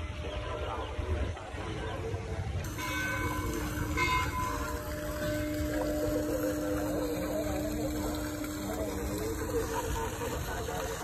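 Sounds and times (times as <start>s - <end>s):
low hum: 2.6s - 11.0s
pond water splashing: 2.6s - 11.0s.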